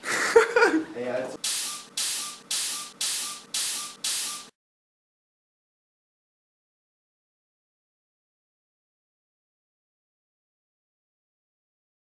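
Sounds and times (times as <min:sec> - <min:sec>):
spray can hissing in bursts: 0:01.4 - 0:04.5.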